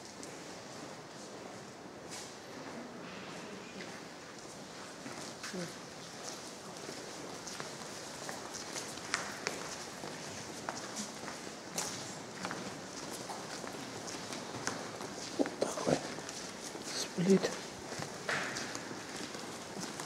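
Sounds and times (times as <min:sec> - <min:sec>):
footsteps on stone floor: 0:06.2 - 0:20.0.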